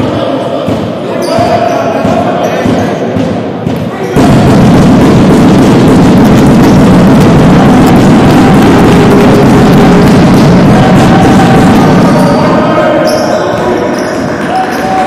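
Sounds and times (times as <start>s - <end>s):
voices on court: 0.0s - 4.2s, 7.7s - 15.0s
loud dense din: 0.0s - 15.0s
basketball bouncing: 0.6s - 14.9s.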